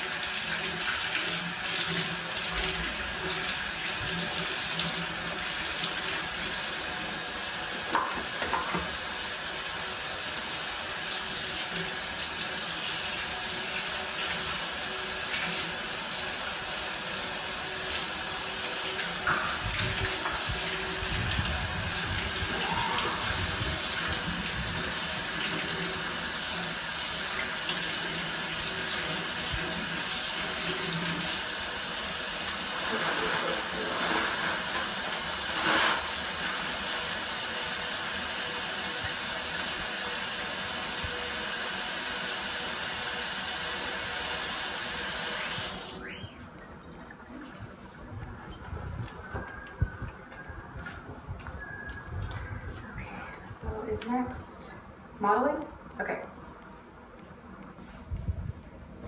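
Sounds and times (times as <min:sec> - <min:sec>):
faucet water running into sink: 0:00.0 - 0:46.0.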